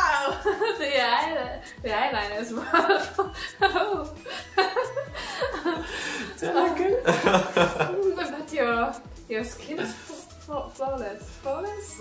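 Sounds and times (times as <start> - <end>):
people laughing: 2.6 - 8.2.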